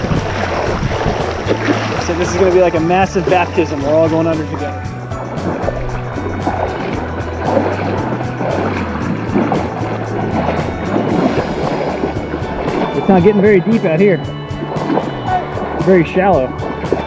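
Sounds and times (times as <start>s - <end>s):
background music with beat: 0.0s - 17.0s.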